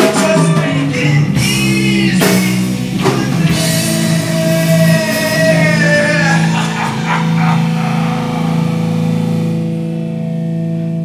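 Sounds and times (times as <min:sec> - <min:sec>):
distorted electric guitar chord: 0:02.7 - 0:11.0.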